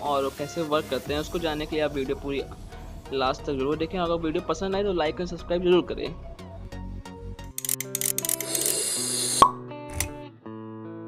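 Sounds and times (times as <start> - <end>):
small click: 9.4 - 10.2.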